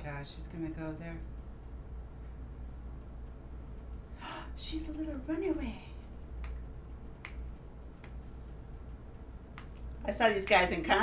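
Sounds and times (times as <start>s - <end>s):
steady low hum: 0.0s - 11.0s
sharp clicks: 6.4s - 8.3s, 8.9s - 10.8s.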